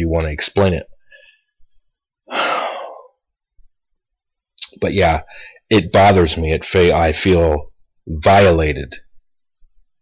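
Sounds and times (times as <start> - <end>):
man sighing: 2.3 - 3.2.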